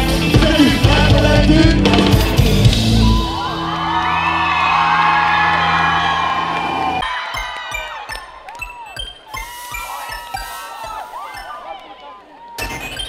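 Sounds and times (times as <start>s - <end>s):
live pop band playing: 0.0s - 7.0s
crowd cheering and whooping: 2.6s - 13.0s.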